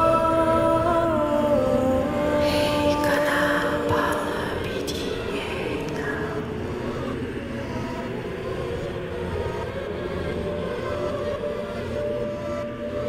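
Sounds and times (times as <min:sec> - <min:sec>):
dense hazy wash: 0:00.0 - 0:13.0
low rumbling drone: 0:00.0 - 0:13.0.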